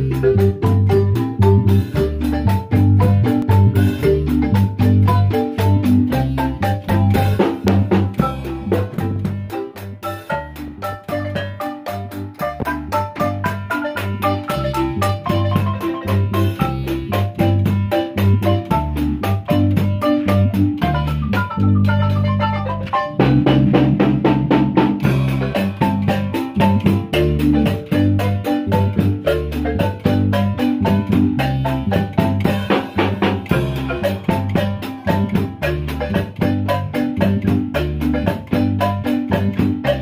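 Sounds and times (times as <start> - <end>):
marimba band with drum kit: 0.0 - 40.0.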